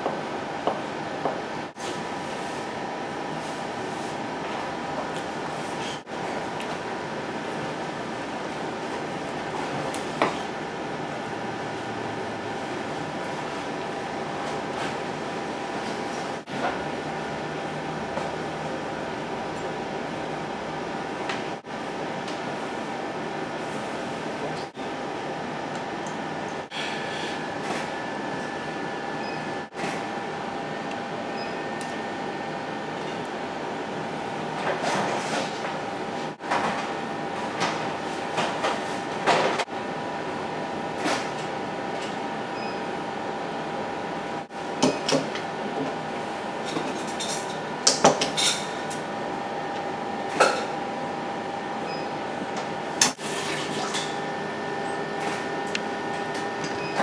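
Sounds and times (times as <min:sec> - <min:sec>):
steady hum: 0:00.0 - 0:57.0.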